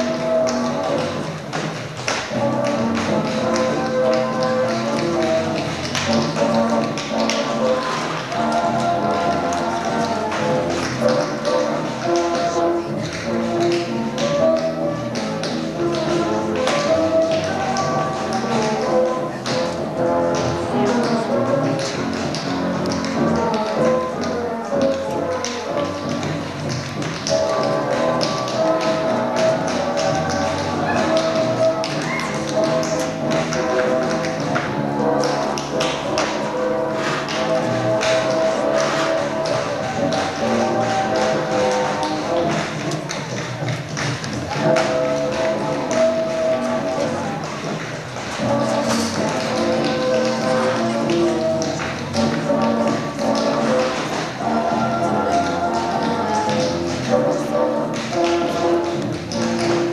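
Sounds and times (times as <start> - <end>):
dance music: 0.0 - 59.9
feet tapping on stage: 0.0 - 59.9.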